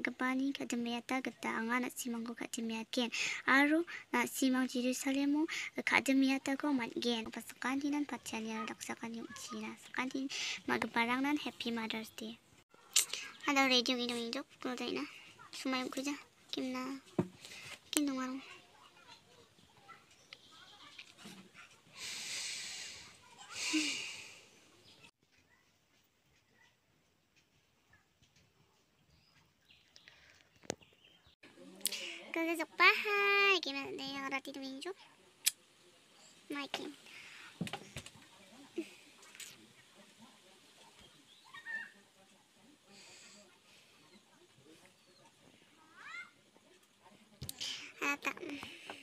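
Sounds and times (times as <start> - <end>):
person breathing out through nose: 22.0 - 24.5.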